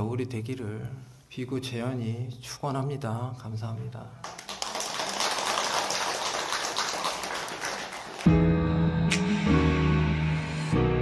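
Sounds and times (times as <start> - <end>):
crowd applauding: 4.2 - 8.4
music with sustained tones: 8.3 - 11.0.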